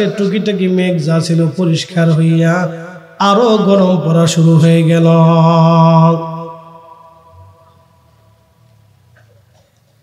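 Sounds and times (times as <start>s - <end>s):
man chanting a sermon: 0.0s - 7.6s.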